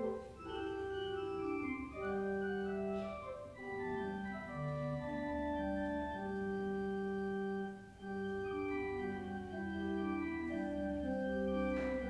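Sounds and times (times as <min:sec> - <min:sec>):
organ playing slow chords: 0:00.0 - 0:12.0.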